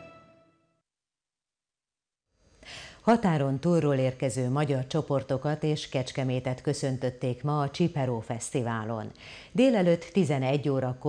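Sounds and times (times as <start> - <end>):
woman breathing in: 2.4 - 3.0, 9.2 - 9.6
woman speaking: 3.0 - 11.0.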